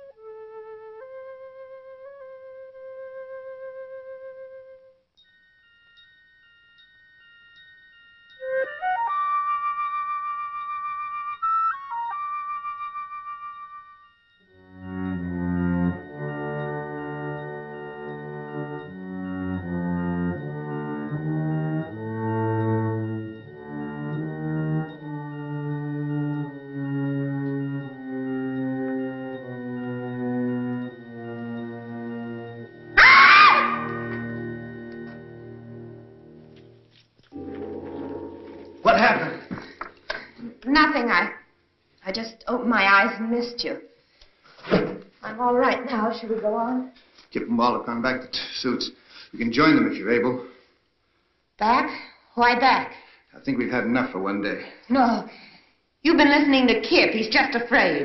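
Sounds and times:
faint steady high tones: 4.8 - 9.1, 12.4 - 19.1
tone gliding up: 37.3 - 39.8
slow low sustained chords: 37.4 - 39.2.

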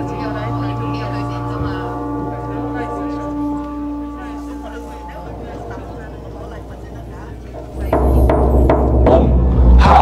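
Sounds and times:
low-pitched ritual music: 0.0 - 10.0
murmur of voices: 0.0 - 10.0
drum stroke: 7.5 - 9.9.

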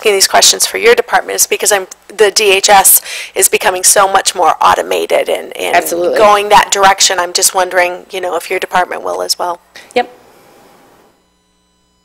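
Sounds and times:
faint electrical hum: 0.0 - 12.0
soft hiss: 9.6 - 12.0.

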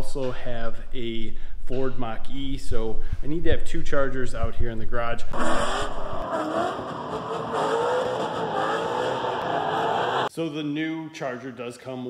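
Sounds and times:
car engine revving: 5.4 - 10.3
tyre squeal: 5.4 - 10.3.

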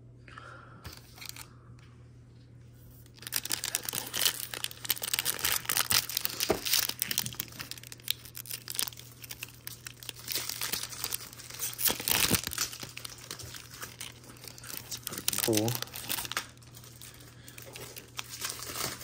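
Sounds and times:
foil wrapper crinkling and tearing: 0.9 - 1.5, 3.0 - 19.0
person murmuring: 15.1 - 15.9.

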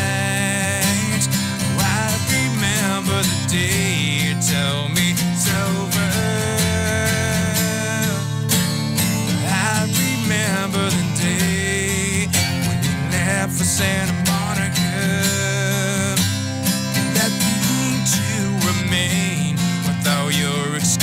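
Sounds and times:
acoustic guitars playing: 0.0 - 21.0.

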